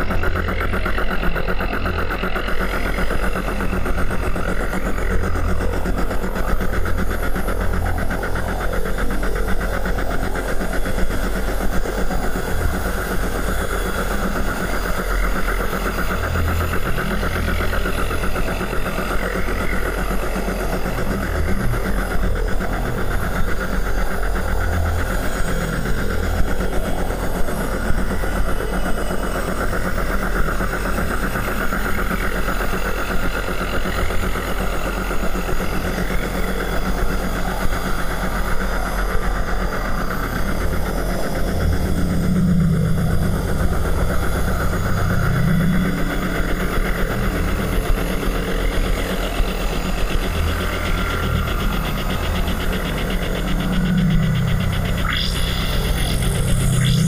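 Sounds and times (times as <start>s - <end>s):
industrial noise music drone: 0.0s - 57.0s.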